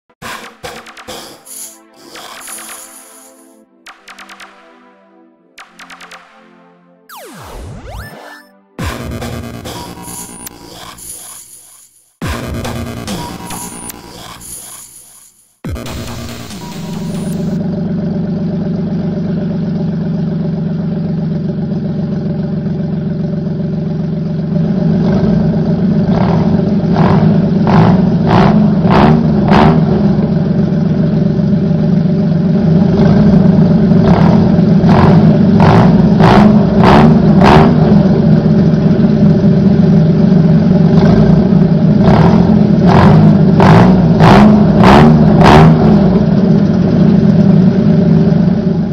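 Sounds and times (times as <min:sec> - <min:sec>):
car engine idling and revving: 0:08.8 - 0:48.9.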